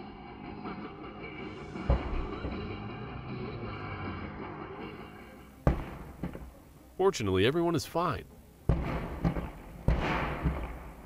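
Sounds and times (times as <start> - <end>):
background music: 0.0 - 11.0
fire exploding with loud bangs: 5.6 - 6.6, 8.7 - 11.0.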